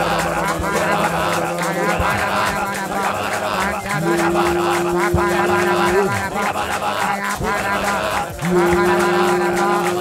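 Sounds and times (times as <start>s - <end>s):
backing music: 0.0s - 10.0s
man singing long note: 0.0s - 10.0s.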